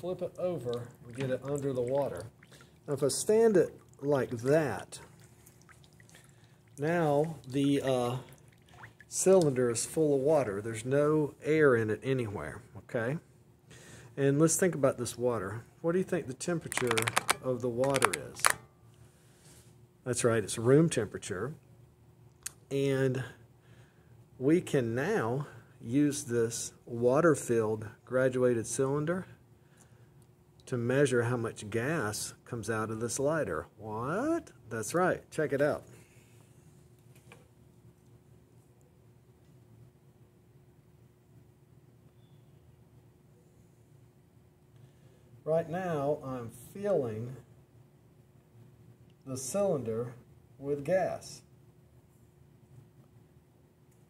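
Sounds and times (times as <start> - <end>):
man speaking: 0.0 - 2.3, 6.8 - 8.3, 14.2 - 18.6
faint steady hum: 0.0 - 54.0.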